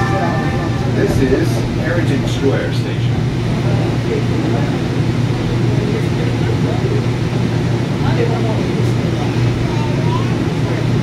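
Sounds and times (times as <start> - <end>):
low hum inside train car: 0.0 - 11.0.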